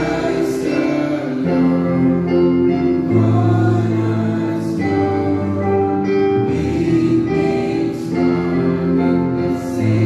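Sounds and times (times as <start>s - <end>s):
group singing through microphones: 0.0s - 10.0s
keyboard accompaniment: 0.0s - 10.0s.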